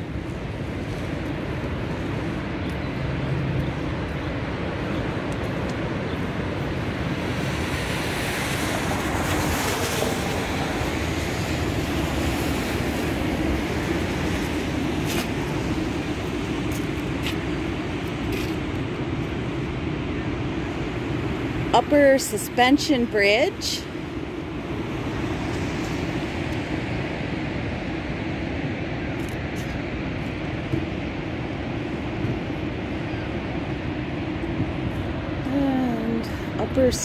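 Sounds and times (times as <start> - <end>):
outdoor rushing noise: 0.0 - 37.0.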